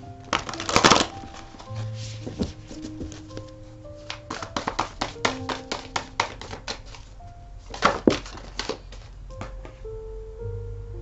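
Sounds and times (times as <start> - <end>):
soft background music: 0.0 - 11.0
cards being shuffled: 0.3 - 9.6.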